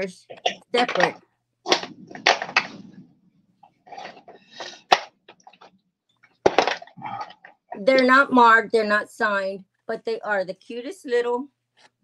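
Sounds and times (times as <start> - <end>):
breathy sounds: 1.7 - 5.7, 6.8 - 7.7.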